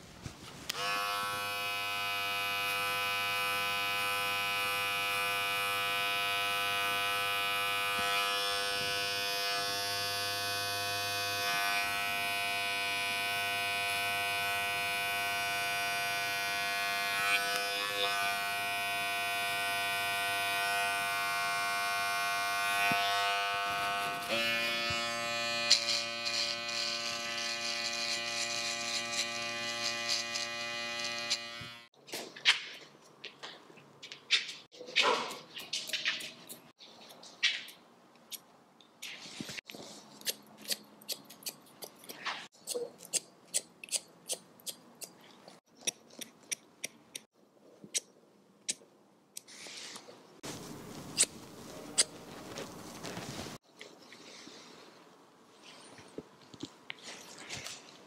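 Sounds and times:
hair clipper buzzing: 0.7 - 31.9.

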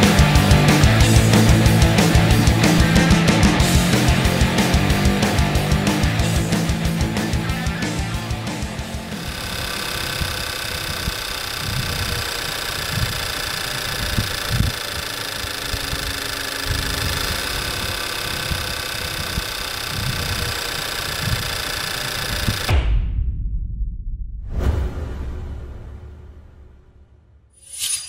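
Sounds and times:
car engine idling: 0.0 - 22.6.

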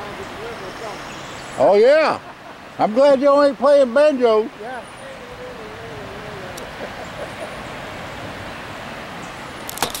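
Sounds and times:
river rapids rushing: 0.0 - 10.0.

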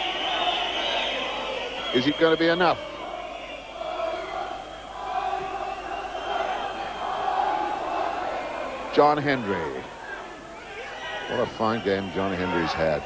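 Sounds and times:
crowd chanting: 0.0 - 13.0.

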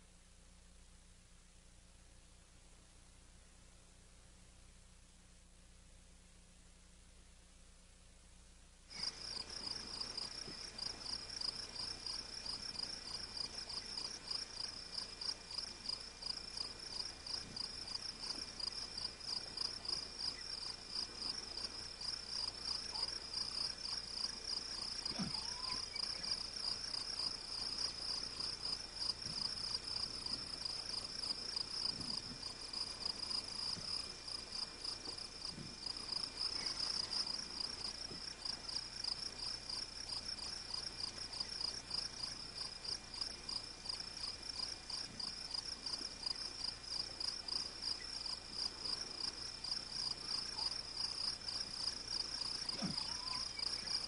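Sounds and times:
crickets trilling: 8.9 - 54.0.

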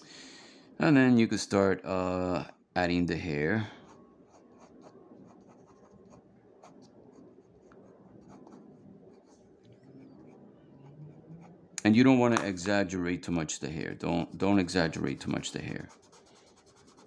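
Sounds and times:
pencil strokes on paper: 14.8 - 17.0.

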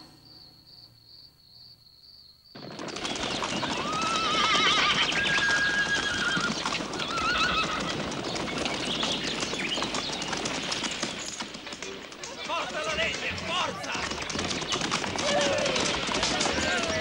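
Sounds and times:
horses galloping hooves: 2.5 - 17.0
horses whinnying: 2.6 - 17.0.

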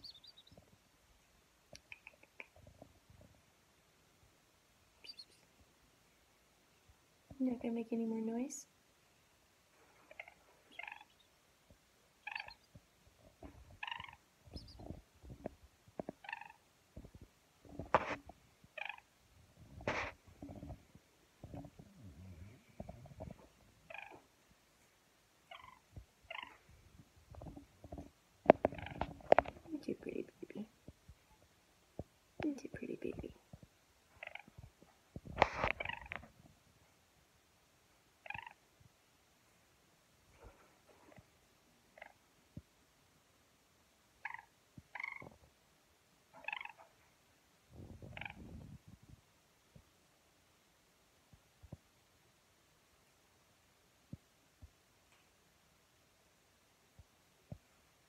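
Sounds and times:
pheasant chick trilling: 0.0 - 0.6, 5.0 - 5.4, 12.3 - 12.7, 13.8 - 15.0
chick peeping softly: 0.0 - 0.7, 5.0 - 5.6, 10.0 - 11.4, 12.2 - 15.5
rumbling and rustling near microphone: 12.7 - 16.2, 16.9 - 24.3, 25.9 - 36.8, 47.7 - 49.3.

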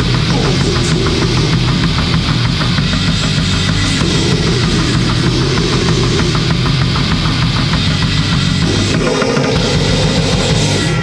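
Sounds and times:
distorted guitar and bass: 0.0 - 11.0
fast dense drumming: 0.0 - 11.0.

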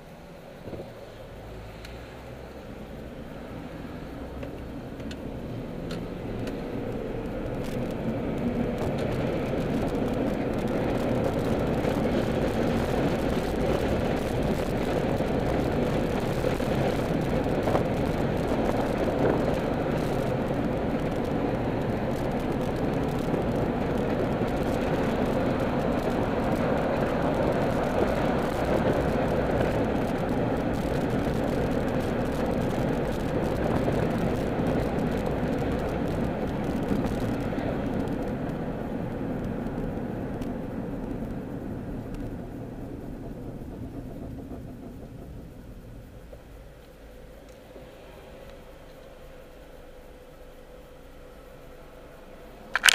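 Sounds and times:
car road and engine noise: 0.0 - 52.9.

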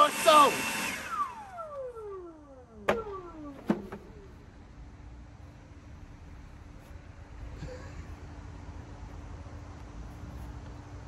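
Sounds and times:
leaf blower spinning down: 0.0 - 4.6.

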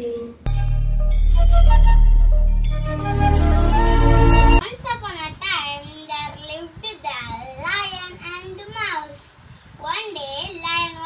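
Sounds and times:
instrumental title music: 0.5 - 4.6.

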